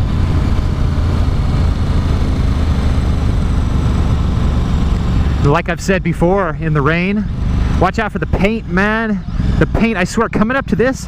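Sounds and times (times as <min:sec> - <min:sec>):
motorcycle engine rumble: 0:00.0 - 0:11.0.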